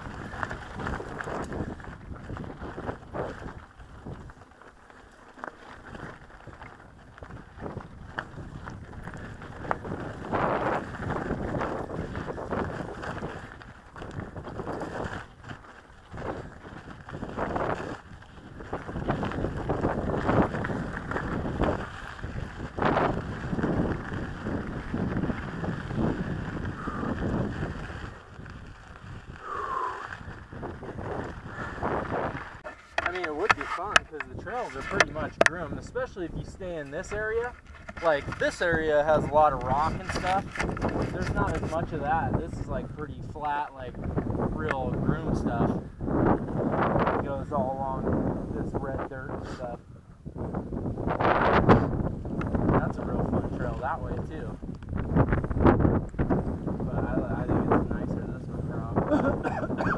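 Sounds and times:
wind buffeting microphone: 0.0s - 4.5s, 5.6s - 59.9s
wheels knocking on rocks: 0.0s - 47.7s
mountain bike rattling over rocks: 0.0s - 49.7s, 50.3s - 59.9s.

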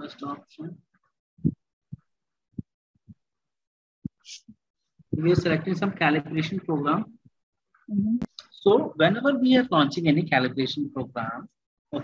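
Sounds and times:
soft low thumps: 1.4s - 3.3s.

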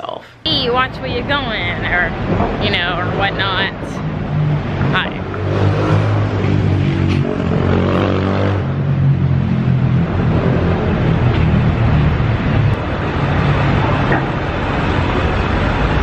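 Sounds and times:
city street traffic: 0.2s - 16.0s
vehicle engine running loudly: 1.8s - 16.0s.

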